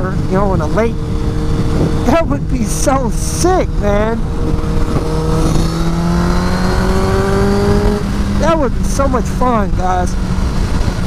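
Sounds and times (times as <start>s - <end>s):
motorcycle engine revving: 0.0s - 11.0s
wind rushing over microphone: 0.0s - 11.0s.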